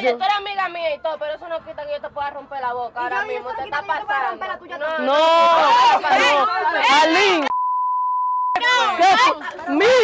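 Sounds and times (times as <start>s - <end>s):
women shouting: 3.2s - 7.4s, 8.6s - 10.0s
censor bleep: 7.5s - 8.6s.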